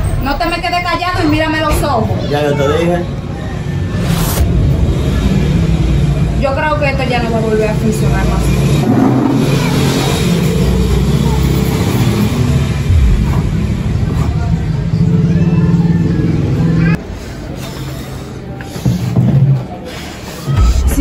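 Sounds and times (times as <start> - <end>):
motor vehicle rumbling: 0.0 - 21.0.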